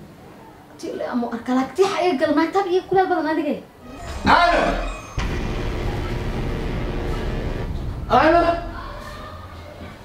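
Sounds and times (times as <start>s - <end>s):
steady rumbling noise: 5.2s - 8.9s.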